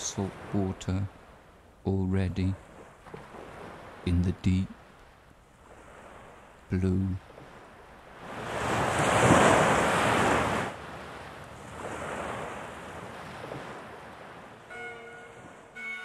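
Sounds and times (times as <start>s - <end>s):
sea waves breaking on shore: 0.0s - 1.8s, 2.4s - 16.0s
bagpipes playing: 14.7s - 16.0s.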